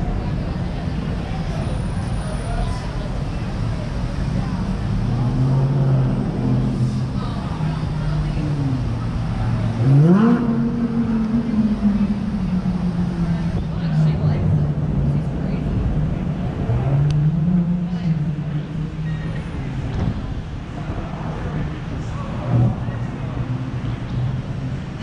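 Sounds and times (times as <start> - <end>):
traffic noise: 0.0 - 25.0
vehicle engine revving: 4.0 - 24.9
engine rising in pitch: 4.5 - 19.9.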